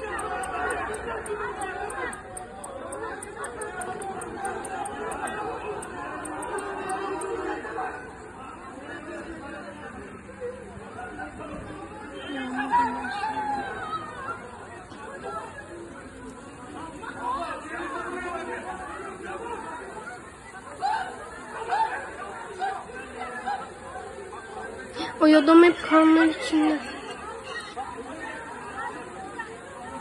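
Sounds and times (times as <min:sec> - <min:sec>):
people talking over one another: 0:00.0 - 0:30.0.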